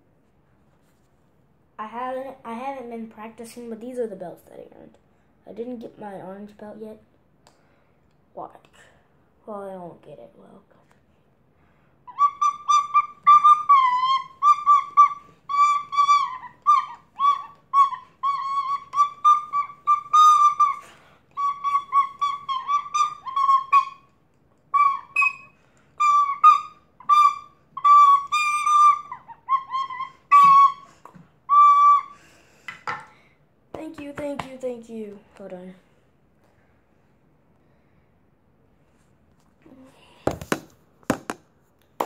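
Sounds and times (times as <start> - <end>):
knocks: 40.3 - 41.4.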